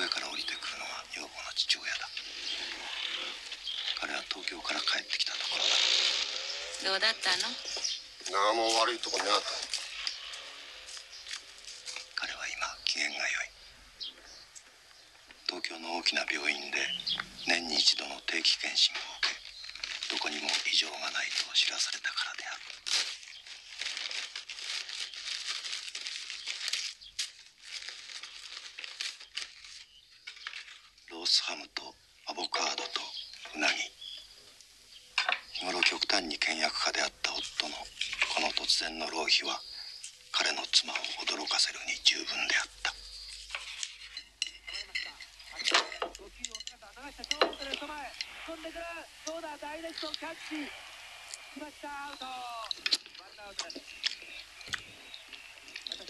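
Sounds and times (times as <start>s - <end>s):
cicadas singing: 0.0s - 56.0s
wrapping paper crinkling and tearing: 8.6s - 13.4s, 18.6s - 31.0s, 40.5s - 44.3s.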